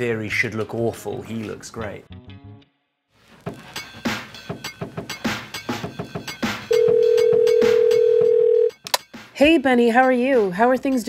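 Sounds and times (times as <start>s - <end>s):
background music with beat: 3.2s - 11.0s
phone ringing tone beep: 6.7s - 8.8s.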